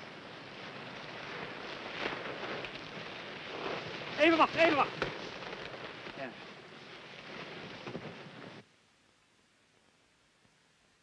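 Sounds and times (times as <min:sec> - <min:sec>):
faint rustles: 0:00.0 - 0:08.7
steady hiss: 0:00.0 - 0:11.0.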